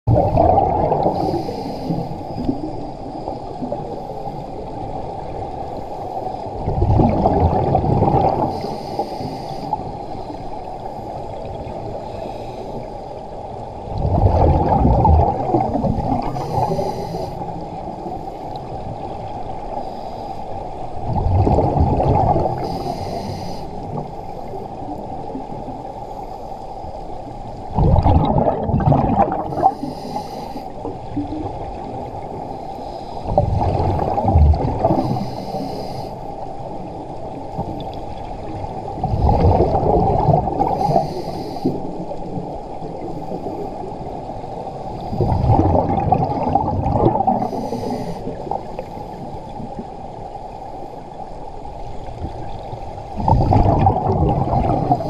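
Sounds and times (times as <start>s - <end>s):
muffled underwater wash: 0.0s - 55.0s
exhaled bubbles bursting: 0.1s - 1.4s, 6.6s - 8.5s, 13.9s - 16.8s, 21.1s - 22.6s, 27.7s - 29.8s, 33.3s - 35.1s, 39.0s - 41.0s, 45.1s - 48.6s, 53.2s - 55.0s.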